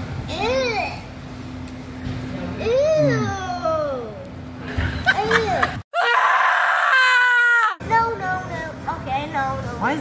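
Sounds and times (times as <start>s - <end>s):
long loud scream: 5.9s - 7.8s.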